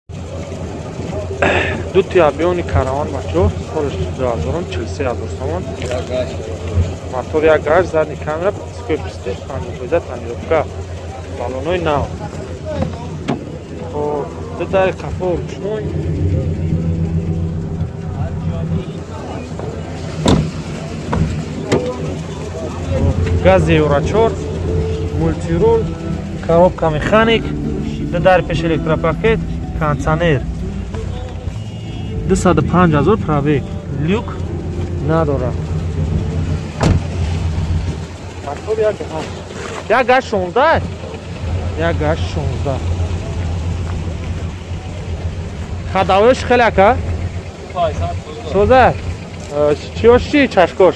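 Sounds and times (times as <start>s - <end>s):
steady low rumble: 0.1s - 39.5s
car engine idling: 0.1s - 50.9s
faint voices talking: 0.1s - 50.9s.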